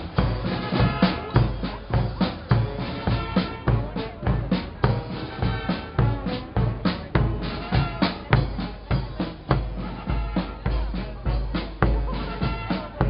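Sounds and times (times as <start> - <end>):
snare and bass drums: 0.0 - 13.0
trombones and brass: 0.0 - 13.0.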